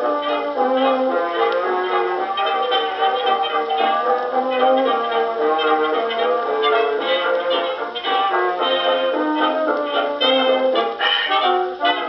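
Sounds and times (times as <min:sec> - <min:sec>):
brass carrying the tune: 0:00.0 - 0:12.0
dance orchestra playing: 0:00.0 - 0:12.0.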